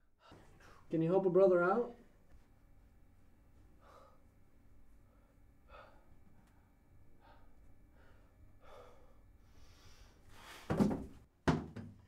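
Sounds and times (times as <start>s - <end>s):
man gasping breaths: 3.7s - 4.4s, 5.0s - 10.8s.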